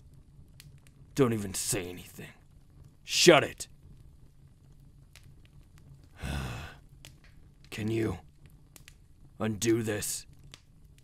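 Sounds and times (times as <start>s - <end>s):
man sighing: 6.2s - 6.8s.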